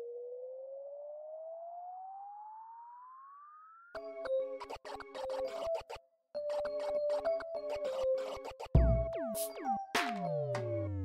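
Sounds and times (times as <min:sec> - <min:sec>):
electronic music with chords and beat: 0:04.0 - 0:11.0.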